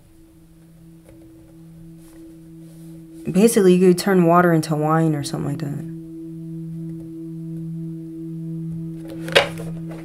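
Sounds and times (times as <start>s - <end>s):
low two-tone drone: 0.0s - 10.0s.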